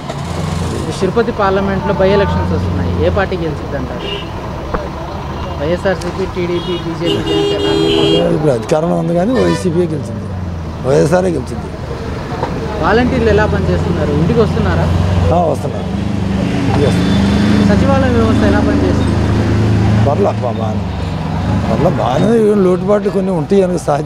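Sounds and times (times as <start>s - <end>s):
vehicle engine hum: 0.0s - 24.0s
man speaking: 5.5s - 11.8s, 21.6s - 24.0s.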